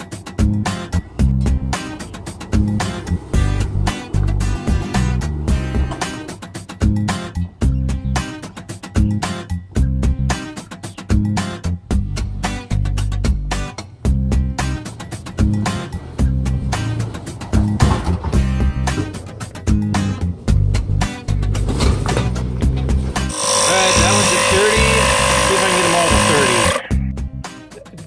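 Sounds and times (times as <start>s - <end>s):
background music with steady beat: 0.0s - 28.0s
air compressor running: 23.3s - 26.9s.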